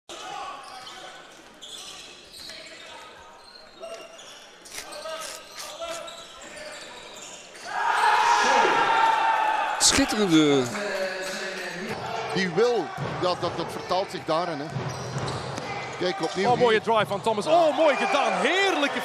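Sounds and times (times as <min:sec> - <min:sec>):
crowd cheering: 0:07.6 - 0:13.7, 0:17.4 - 0:19.0.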